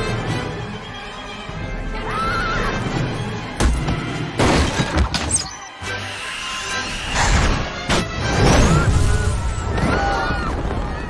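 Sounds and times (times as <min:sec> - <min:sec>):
tense film score: 0:00.0 - 0:11.0.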